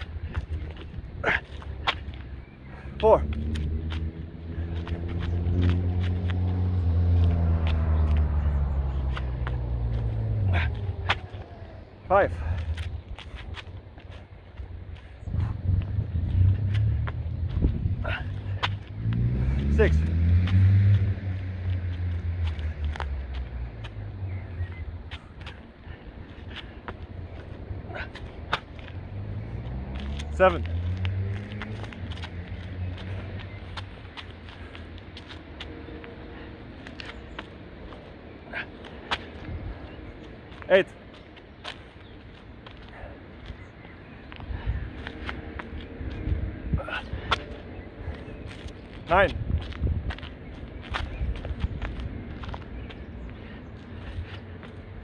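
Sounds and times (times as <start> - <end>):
vehicles passing: 0.0 - 55.0
man counting: 2.9 - 3.6, 10.5 - 12.8, 19.6 - 20.1, 30.2 - 30.8, 40.6 - 41.0, 49.0 - 49.4.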